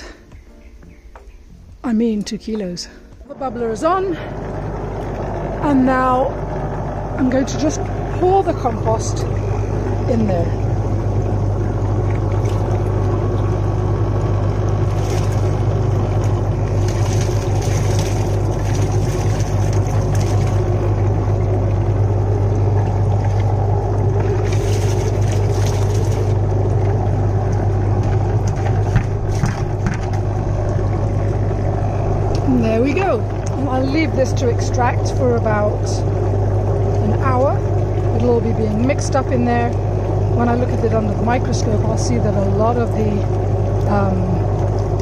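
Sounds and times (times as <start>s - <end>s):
air pump humming: 3.1s - 45.0s
air bubbles churning water: 3.2s - 45.0s.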